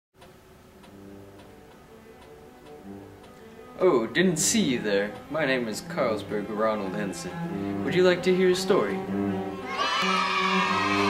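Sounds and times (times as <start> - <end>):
clock ticking: 0.2 - 3.4, 4.1 - 9.4
quiet background music: 0.2 - 11.0
man speaking: 3.8 - 9.0.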